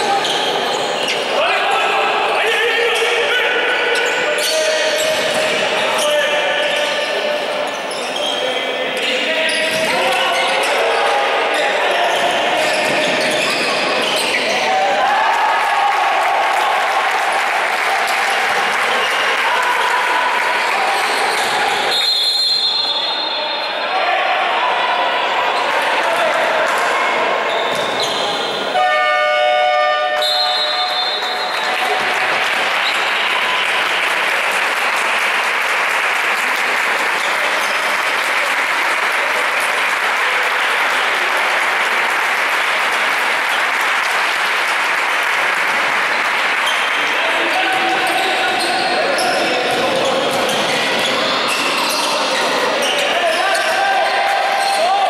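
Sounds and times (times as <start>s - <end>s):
voices in sports hall: 0.0s - 55.0s
referee's whistle: 21.9s - 23.8s, 27.5s - 31.7s
horn blast: 28.8s - 30.6s.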